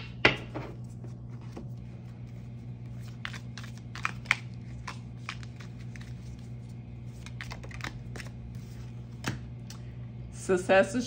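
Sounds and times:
steady low hum: 0.0s - 11.0s
cards being shuffled: 0.8s - 9.5s.

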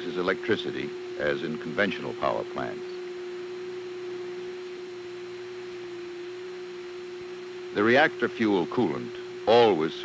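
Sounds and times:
faint hiss: 0.0s - 10.0s
steady electric hum: 0.0s - 10.0s.

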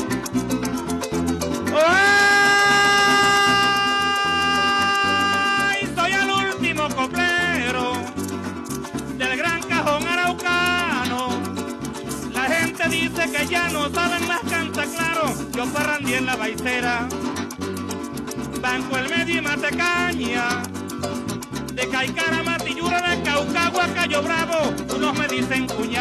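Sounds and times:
cuatro strumming: 0.0s - 26.0s
maracas shaking: 0.0s - 26.0s
man singing: 1.6s - 8.3s, 9.1s - 17.7s, 18.4s - 20.8s, 21.7s - 26.0s.

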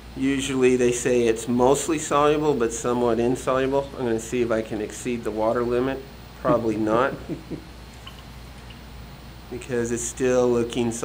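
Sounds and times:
steady low hum: 0.0s - 11.0s
man laughing: 6.4s - 7.7s.

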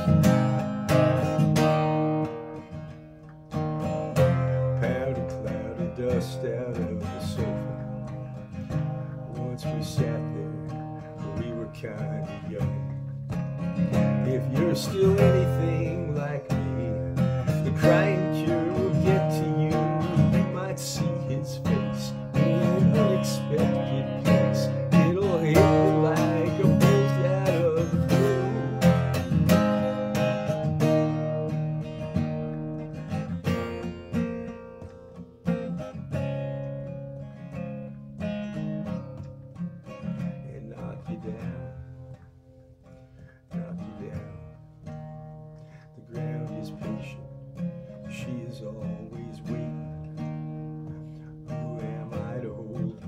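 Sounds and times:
man singing: 0.0s - 1.9s, 3.8s - 34.6s, 38.8s - 42.2s, 43.4s - 45.0s, 45.7s - 53.0s
acoustic guitar strumming chords: 0.0s - 53.0s.

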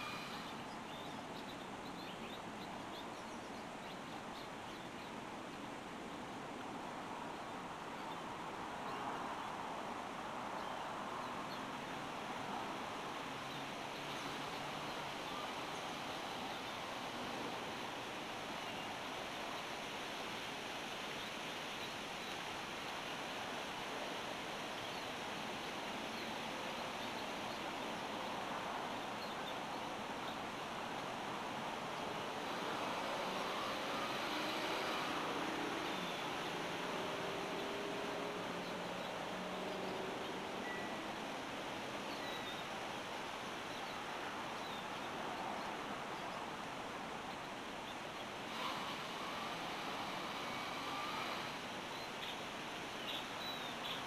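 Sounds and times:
faint high chirp: 0.0s - 2.2s, 40.6s - 41.1s, 42.1s - 42.7s
outdoor background hiss: 0.0s - 54.0s.

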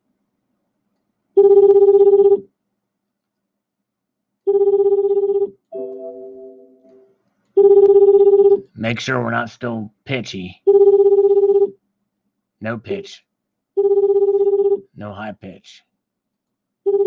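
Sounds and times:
telephone ringing: 1.4s - 2.4s, 4.5s - 8.6s, 10.7s - 11.7s, 13.8s - 14.8s
soft chord of tones: 5.7s - 7.2s.

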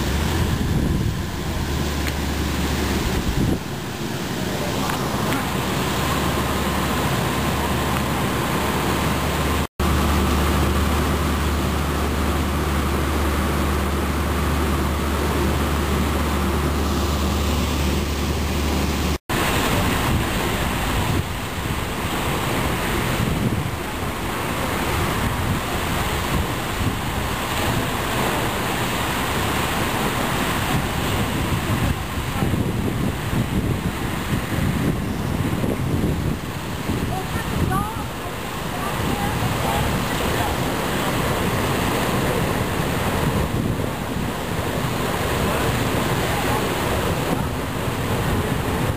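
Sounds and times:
low engine hum: 0.0s - 48.9s
water jetting and splashing: 0.0s - 48.9s.

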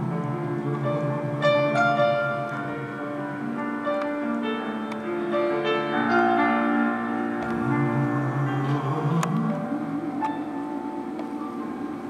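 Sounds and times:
grand piano playing chords: 0.0s - 12.0s.

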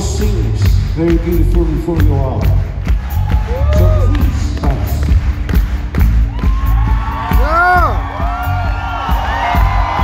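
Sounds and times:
drum and bass thuds: 0.0s - 10.0s
crowd whooping and cheering: 2.9s - 4.5s, 6.0s - 10.0s.

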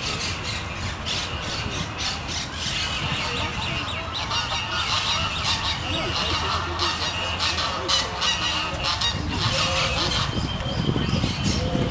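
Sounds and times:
flock of birds calling: 0.0s - 11.9s.

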